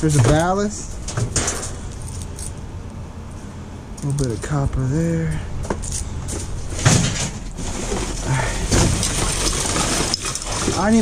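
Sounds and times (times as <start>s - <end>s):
low steady hum: 0.0s - 11.0s
scrap shifting: 5.8s - 11.0s
plastic bags and cardboard rustling: 6.2s - 11.0s.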